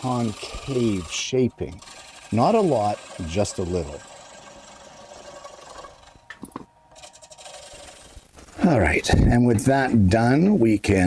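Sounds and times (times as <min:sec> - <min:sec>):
wood lathe turning tool cutting: 0:00.0 - 0:08.3.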